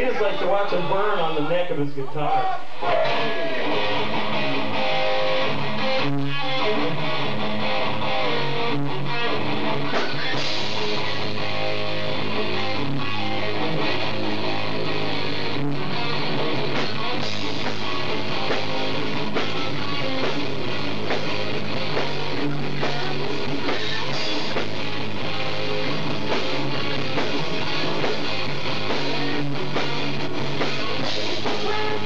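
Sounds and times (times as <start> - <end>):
electric guitars: 0.0 - 32.0
drum kit: 2.7 - 32.0.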